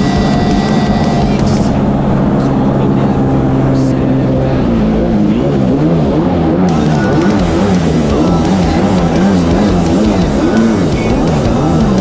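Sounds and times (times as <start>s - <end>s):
jet ski engine running: 0.0s - 12.0s.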